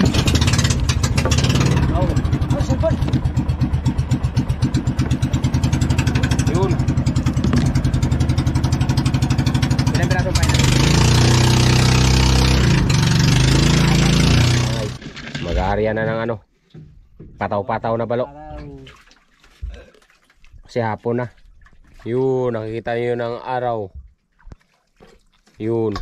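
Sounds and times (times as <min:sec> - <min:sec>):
boat engine running: 0:00.0 - 0:16.2.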